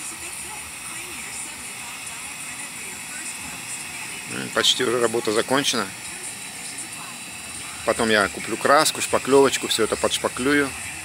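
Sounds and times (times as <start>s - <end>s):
heat gun fan whir and hiss: 0.0s - 11.0s.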